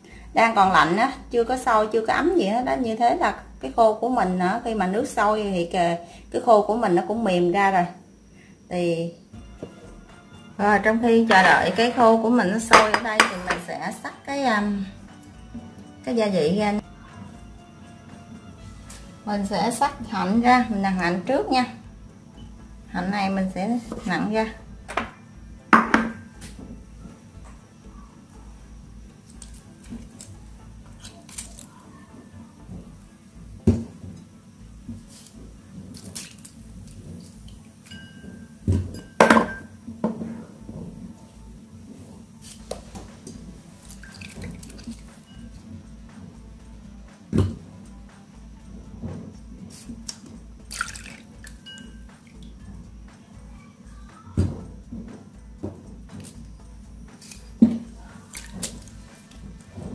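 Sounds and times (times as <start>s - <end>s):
fruit knocking on cutting board: 24.9s - 26.3s
juice dripping and squishing: 29.2s - 31.9s, 34.7s - 38.0s, 42.4s - 45.7s, 49.7s - 52.8s, 56.0s - 59.9s.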